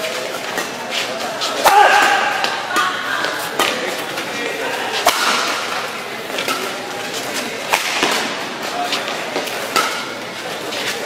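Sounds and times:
sports hall voices: 0.0 - 11.0
rackets striking shuttlecock: 1.6 - 4.2, 5.0 - 6.9, 7.7 - 8.4, 9.0 - 10.2.

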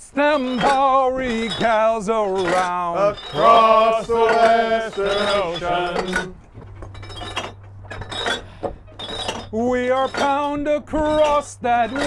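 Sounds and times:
metallic ratchet clinks: 0.4 - 12.0.

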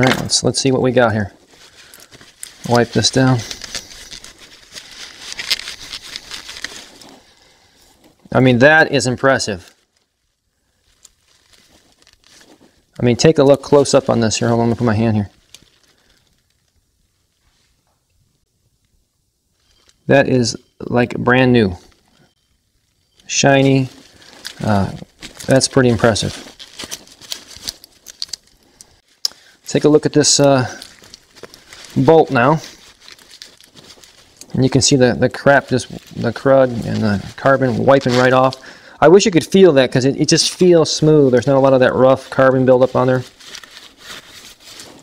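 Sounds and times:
paper towel crinkling: 0.0 - 17.8, 19.6 - 45.0
cloth rustling: 0.0 - 18.1, 19.5 - 45.0
light ticks and crackles: 23.0 - 34.8.

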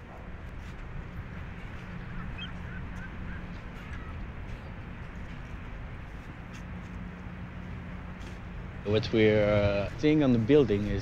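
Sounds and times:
low outdoor rumble: 0.0 - 11.0
water bird calling: 1.7 - 5.0.

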